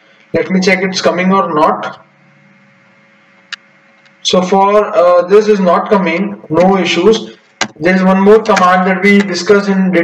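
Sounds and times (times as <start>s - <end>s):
faint steady hum and hiss: 0.0s - 10.0s.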